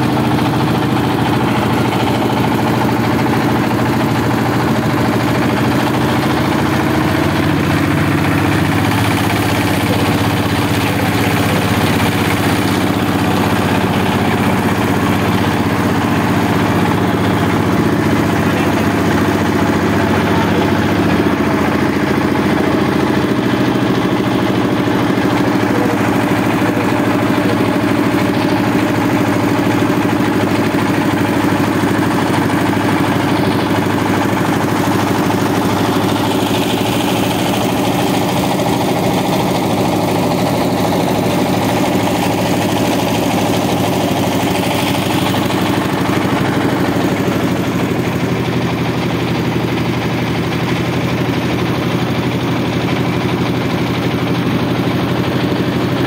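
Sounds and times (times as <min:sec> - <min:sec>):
boat engine running: 0:00.0 - 0:56.0.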